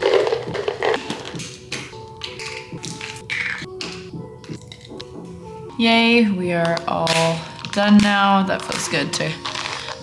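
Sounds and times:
capsules rattling in plastic bottle: 0.0 - 1.4, 6.8 - 10.0
background music: 0.0 - 10.0.

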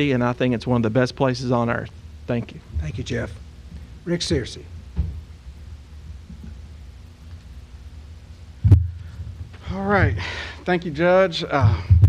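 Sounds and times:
low room rumble: 0.0 - 12.0
microphone thump: 4.9 - 5.3, 8.6 - 9.6, 11.7 - 12.0.

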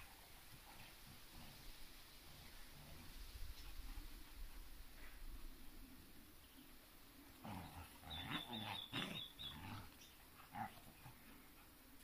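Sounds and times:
dog play-growling: 7.3 - 11.8.

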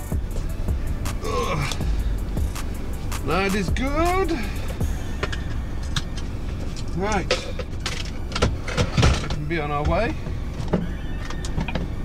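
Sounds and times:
diesel engine idling: 0.0 - 12.0.

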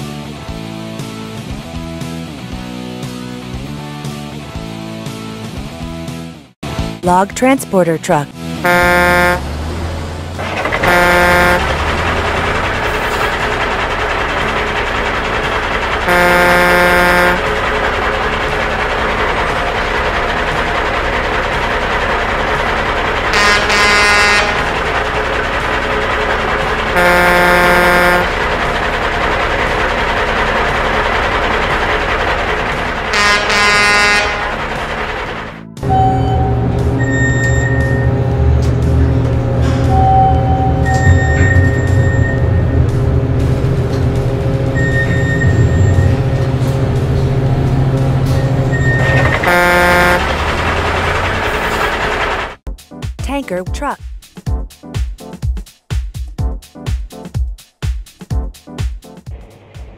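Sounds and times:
music: 0.0 - 8.8, 34.1 - 49.2, 52.7 - 59.9
truck engine noise: 0.0 - 52.7, 59.3 - 59.9
truck air horn honking: 8.6 - 9.7, 10.6 - 12.4, 16.0 - 17.7, 23.3 - 24.8, 26.9 - 28.4, 33.1 - 34.6, 49.1 - 50.5.

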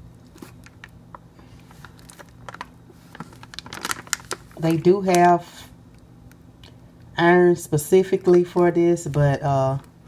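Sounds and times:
foil bag crinkling: 0.2 - 5.4.

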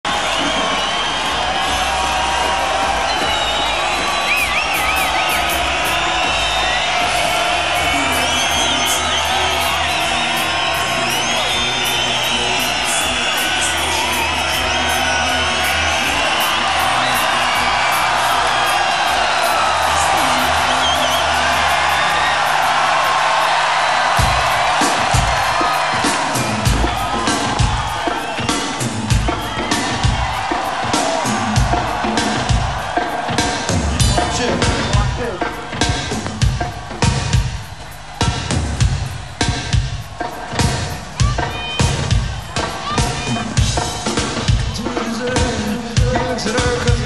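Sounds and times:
crowd cheering and whistling: 0.0 - 47.0.

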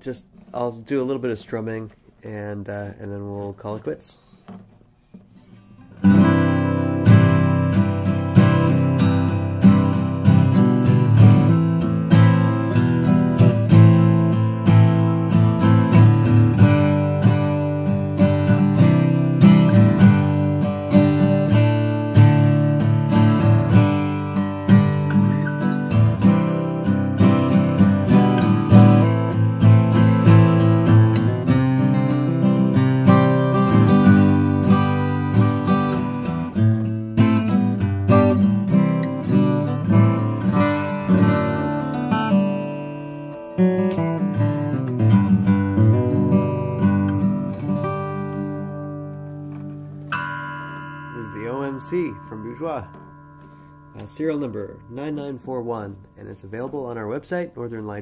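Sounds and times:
acoustic guitar strumming chords: 0.0 - 58.0.

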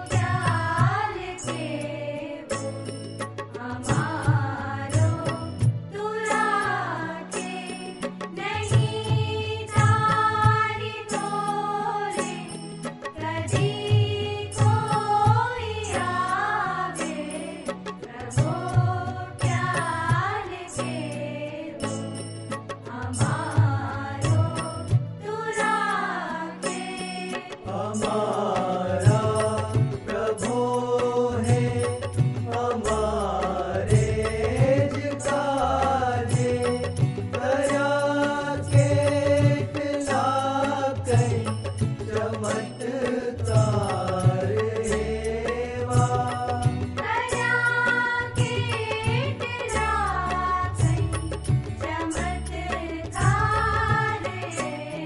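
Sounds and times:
steady drum beat: 0.0 - 1.4, 8.6 - 10.9, 13.5 - 16.4, 18.2 - 20.7, 28.9 - 54.6.

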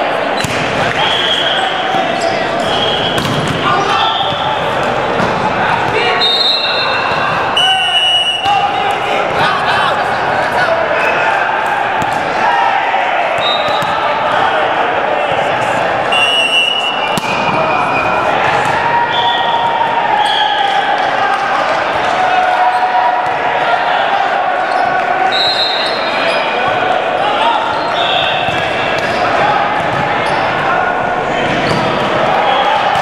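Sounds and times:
ball thudding: 3.2 - 3.6.

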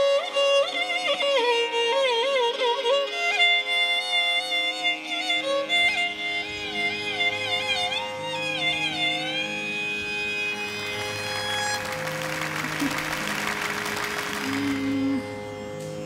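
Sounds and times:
violin gliding notes: 0.0 - 16.0
steady drone: 9.8 - 16.0.

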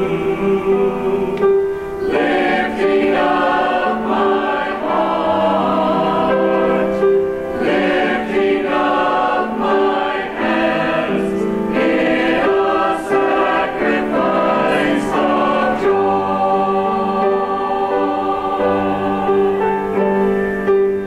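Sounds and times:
church choir singing: 0.0 - 21.0.

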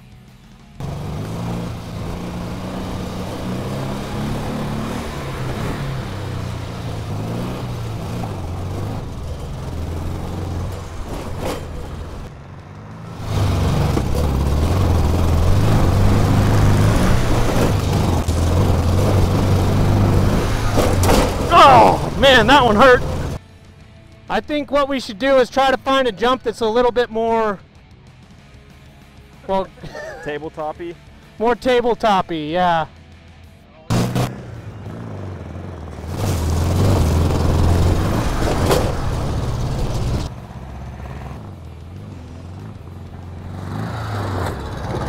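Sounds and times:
dune buggy engine revving: 0.7 - 23.4, 33.9 - 45.0
man's voice: 21.5 - 23.2, 24.3 - 27.6, 29.5 - 32.9.

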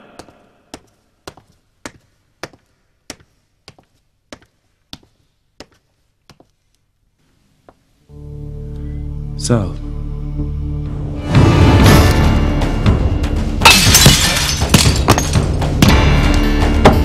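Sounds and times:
footsteps on concrete: 0.2 - 6.9
low sustained music chord: 8.1 - 11.3.

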